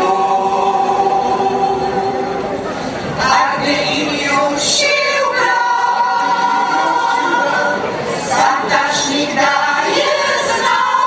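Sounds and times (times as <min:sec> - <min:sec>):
choir singing unaccompanied: 0:00.0 - 0:11.0.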